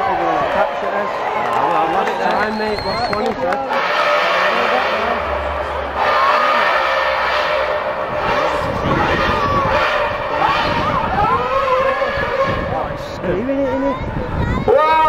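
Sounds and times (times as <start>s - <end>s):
crowd and voices: 0.0s - 15.0s
racing car engine revving: 3.7s - 13.2s.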